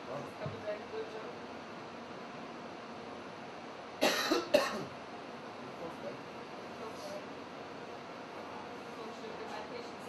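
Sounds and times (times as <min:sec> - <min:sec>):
person coughing: 0:04.0 - 0:04.9.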